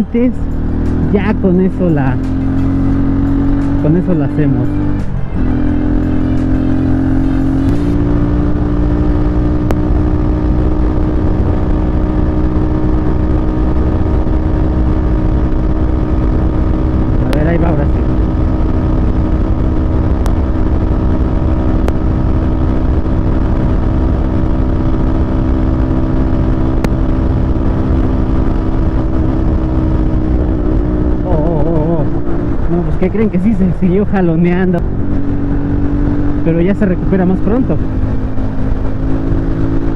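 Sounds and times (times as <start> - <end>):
motorcycle engine at high revs: 0.0 - 39.9.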